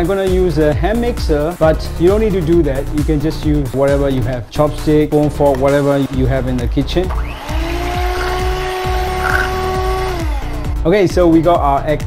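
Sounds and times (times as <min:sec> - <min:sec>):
background music with steady beat: 0:00.0 - 0:12.0
electric hand mixer running: 0:07.1 - 0:10.8.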